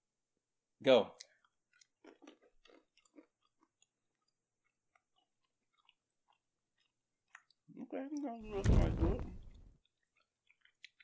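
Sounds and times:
peanuts being chewed: 1.2s - 8.3s, 9.4s - 11.0s.

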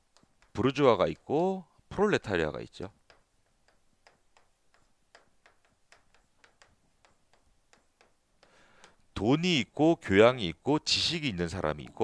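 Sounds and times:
chalk tapping on chalkboard: 0.0s - 9.2s.

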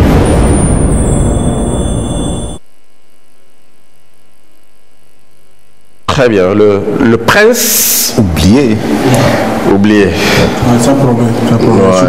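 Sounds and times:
faint hum with tones: 0.0s - 12.0s.

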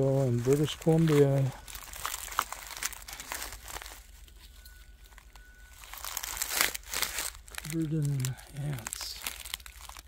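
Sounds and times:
footsteps crunching through undergrowth: 0.0s - 10.0s.

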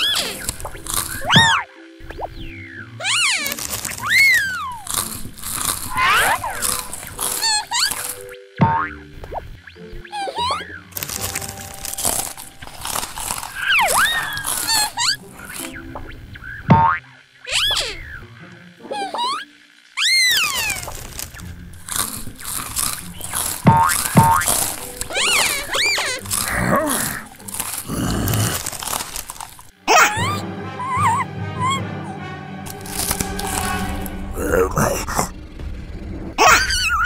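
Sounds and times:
light music: 0.0s - 37.0s
cartoon boings: 1.2s - 4.8s, 5.9s - 6.6s, 10.0s - 10.8s, 16.5s - 18.2s, 18.8s - 21.0s, 23.7s - 26.8s, 29.9s - 31.8s, 36.4s - 37.0s.

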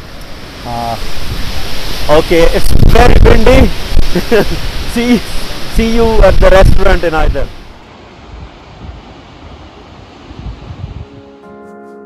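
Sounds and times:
steady rushing noise: 0.0s - 11.3s
wind gusting on microphone: 0.0s - 11.4s
soft background music: 11.0s - 12.0s.

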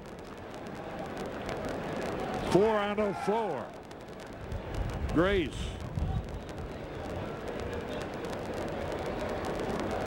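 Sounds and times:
crowd murmur: 0.1s - 10.0s.

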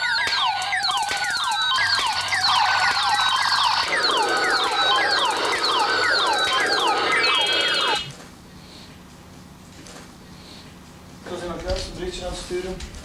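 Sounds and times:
toy laser gun zaps: 0.0s - 8.2s.

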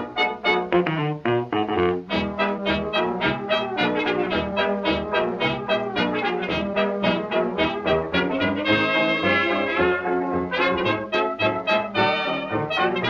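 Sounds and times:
brass dance band music: 0.0s - 13.0s.

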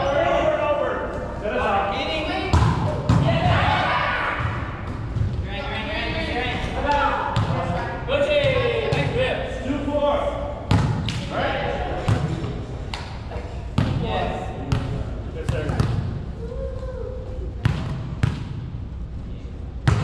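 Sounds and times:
faint players' voices: 0.0s - 18.3s
volleyball slapping on gym floor: 10.7s - 11.3s.

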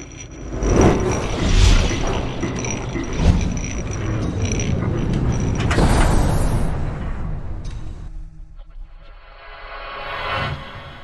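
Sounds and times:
thin steady high tone: 0.0s - 5.7s
mechanical clanks and creaks: 0.0s - 8.2s.

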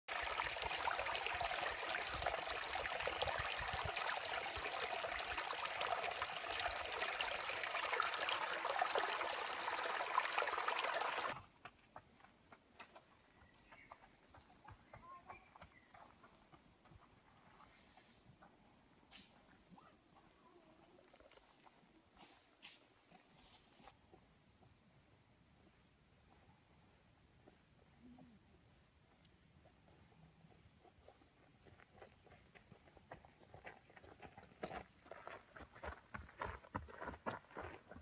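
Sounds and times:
stream trickling over rocks: 0.1s - 11.4s.

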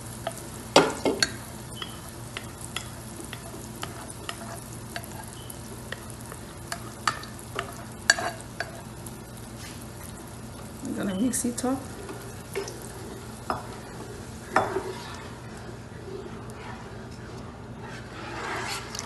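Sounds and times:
tomato puree sizzling in oil: 0.0s - 19.0s.

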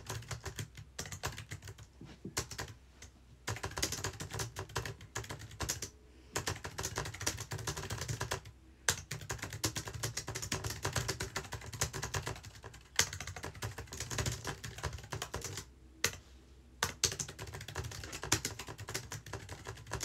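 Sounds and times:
fast typing on computer keyboard: 0.0s - 2.8s, 3.5s - 16.2s, 16.8s - 20.0s.

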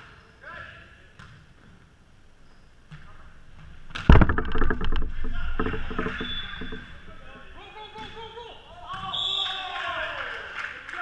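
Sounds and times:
knocks and thuds of play: 2.9s - 9.1s.

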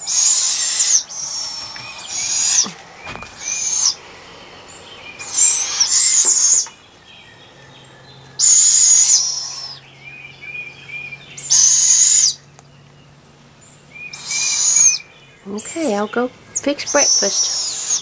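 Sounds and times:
owlets hissing screech calls: 0.0s - 6.9s, 8.4s - 9.8s, 10.5s - 12.5s, 13.8s - 18.0s.

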